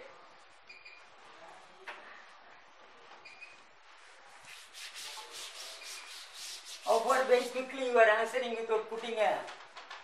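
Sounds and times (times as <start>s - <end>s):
cloth rubbing on chalkboard: 3.9s - 7.8s.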